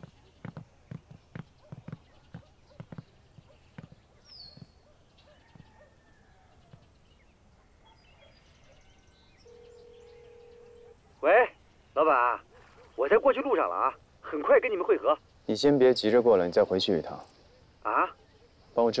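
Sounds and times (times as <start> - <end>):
phone ringback tone: 9.4 - 10.9.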